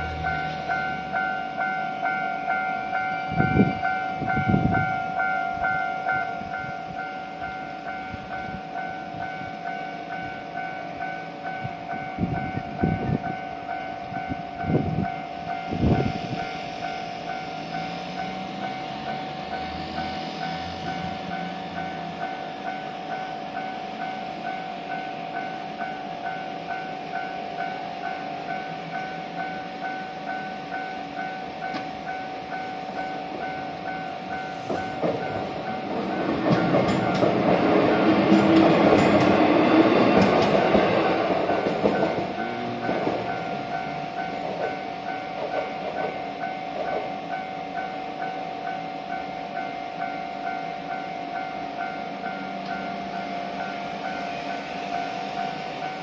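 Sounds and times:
electric train passing: 0.0s - 56.0s
level crossing alarm bell ringing: 0.0s - 56.0s
wheels clicking on rails: 28.5s - 48.3s.

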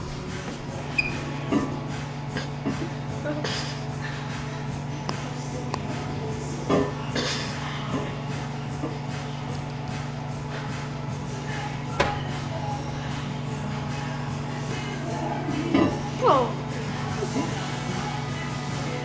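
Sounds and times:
microwave oven humming: 0.0s - 19.0s.

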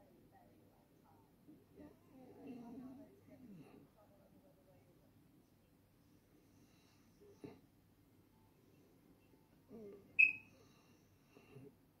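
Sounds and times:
short high-pitched chirp: 10.2s - 10.4s.

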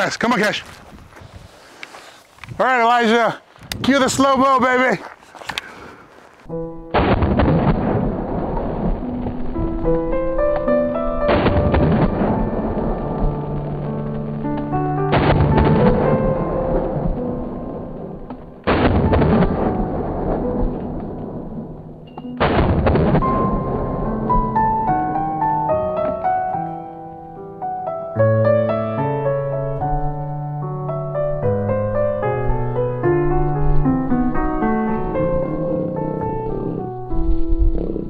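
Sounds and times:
held piano-like notes: 6.5s - 7.0s, 8.2s - 37.9s
deep drawn-out gunshot booms: 6.8s - 9.4s, 11.3s - 13.8s, 15.1s - 24.9s.

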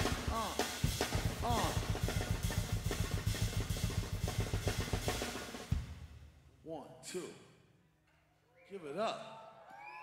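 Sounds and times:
drum kit played fast: 0.0s - 6.3s.

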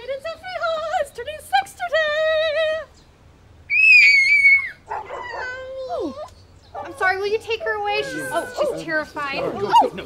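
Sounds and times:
girl screaming: 3.7s - 6.3s
girl crying: 7.7s - 9.0s.

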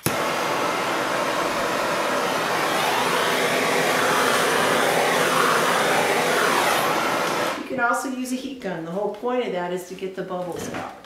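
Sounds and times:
heat tool rushing: 0.0s - 7.8s.

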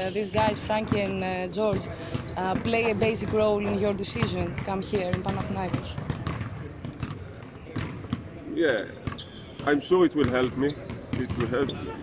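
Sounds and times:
basketballs bouncing on hardwood: 0.0s - 8.4s, 9.0s - 11.8s.

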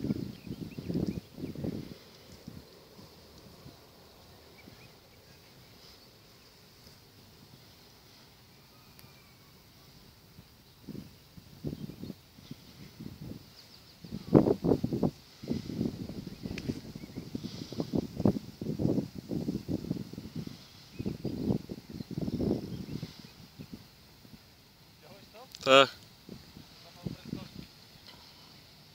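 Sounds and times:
wind buffeting microphone: 0.0s - 6.4s, 10.0s - 24.5s, 26.2s - 27.8s.

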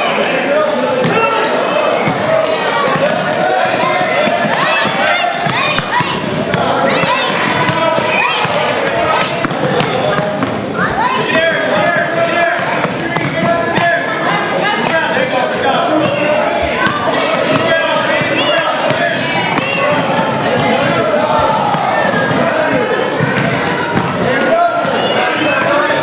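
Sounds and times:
children and spectators calling out: 0.0s - 26.0s.

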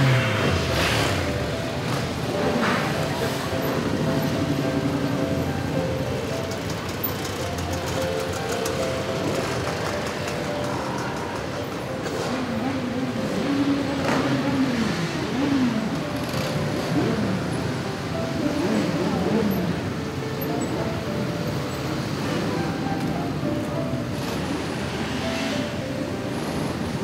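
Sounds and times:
motorcycle engines revving: 0.0s - 27.0s
music: 0.0s - 27.0s.

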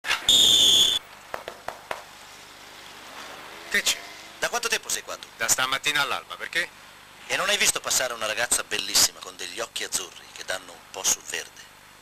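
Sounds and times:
shrill whistle blast: 0.3s - 1.0s.

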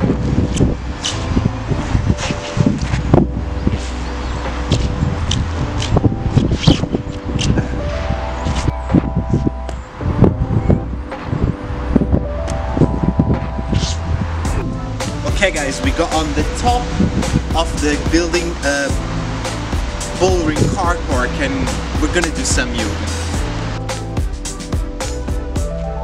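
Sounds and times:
background music with sharp beats: 0.0s - 26.0s.

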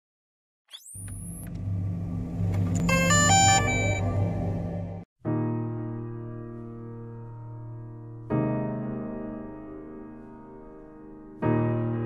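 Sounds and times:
stepped electronic chime notes: 2.7s - 5.0s.

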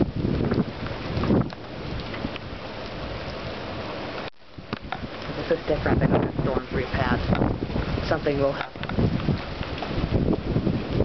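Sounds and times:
storm wind gusting on microphone: 0.0s - 11.0s.

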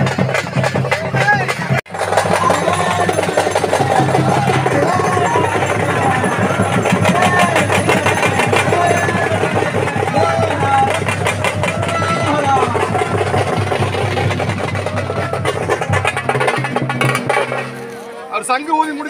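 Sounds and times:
crowd voices: 0.0s - 19.0s
rapid percussive strokes: 0.0s - 19.0s.

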